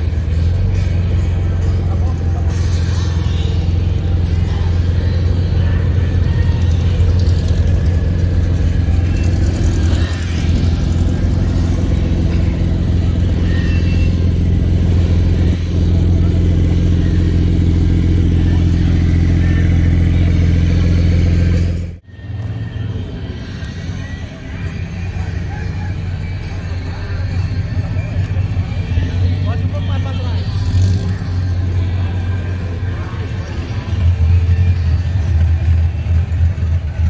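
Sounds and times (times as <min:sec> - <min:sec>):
car engine idling: 0:00.0 - 0:37.0.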